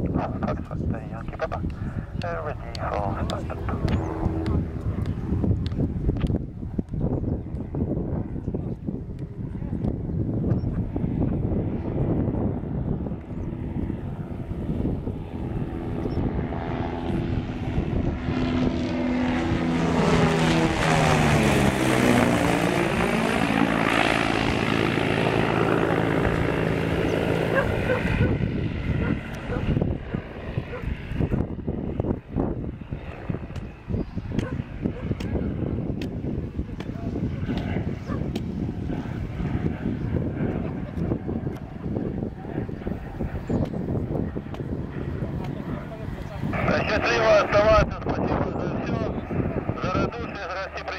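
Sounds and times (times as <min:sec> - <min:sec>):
propeller aircraft flying past: 0:00.0 - 0:50.9.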